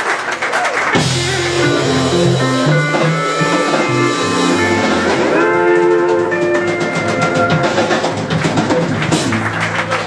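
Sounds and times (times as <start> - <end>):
country band playing: 0.9 - 10.0
sliding note: 1.3 - 7.6.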